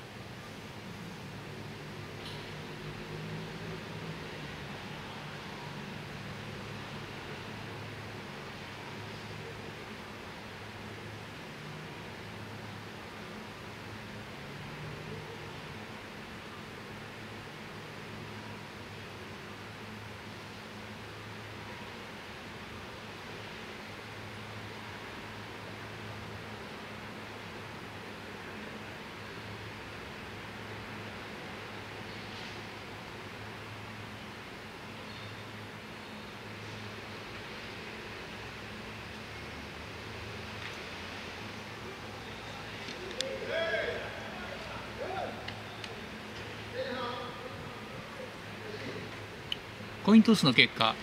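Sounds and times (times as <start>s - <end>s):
even outdoor hiss: 0.0s - 51.0s.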